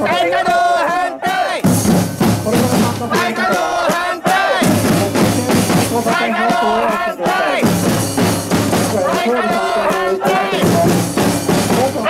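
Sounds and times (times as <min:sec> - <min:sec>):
crowd shouting a chant: 0:00.0 - 0:01.8, 0:02.5 - 0:12.0
snare drums: 0:00.0 - 0:12.0
bass drums: 0:01.6 - 0:12.0.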